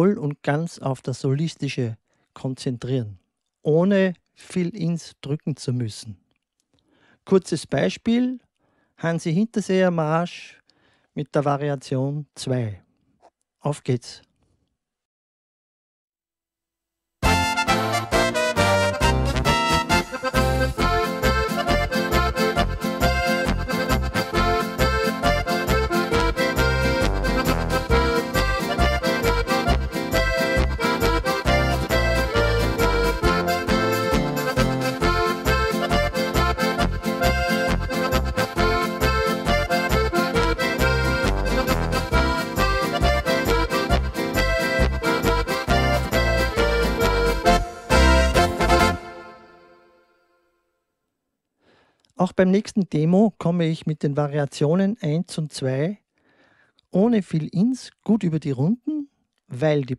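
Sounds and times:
keyboard polka accompaniment: 17.2 - 50.2
accordion-voice keyboard melody: 17.2 - 50.4.

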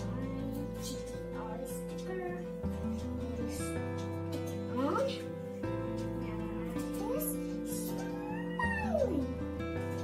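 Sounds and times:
music with sustained notes: 0.0 - 10.0.

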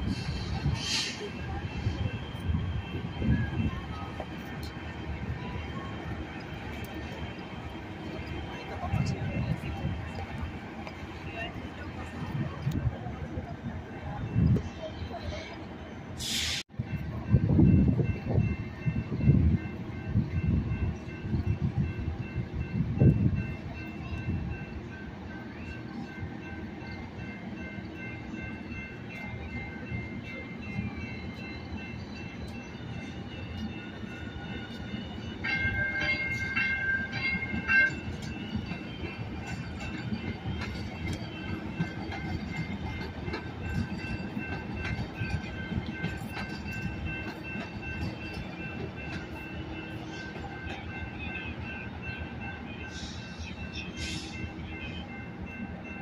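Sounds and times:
light rail train rolling past: 0.0 - 56.0.

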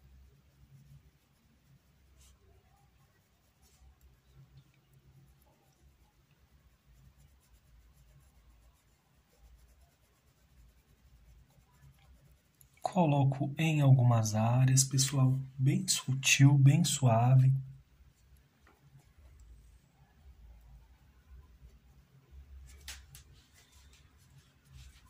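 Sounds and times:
paintbrush scratching on fabric: 0.0 - 13.0, 21.3 - 25.0.

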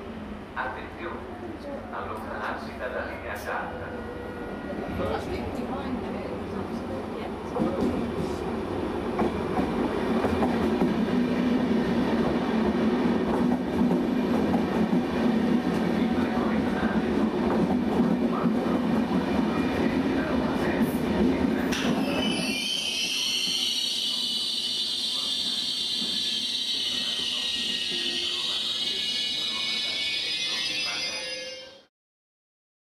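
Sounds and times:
train rumble: 0.0 - 22.3
brakes squealing with hiss: 22.1 - 31.0.

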